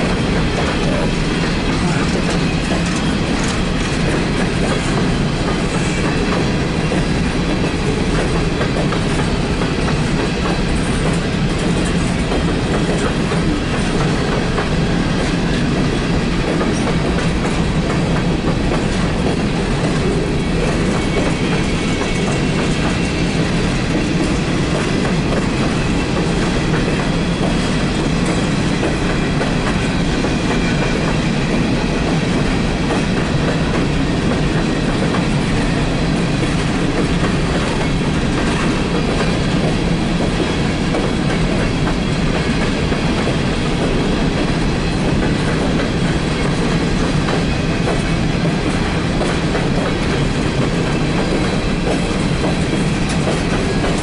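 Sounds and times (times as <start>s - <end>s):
freight train rumble: 0.0s - 54.0s
wheels clicking on rails: 0.0s - 54.0s.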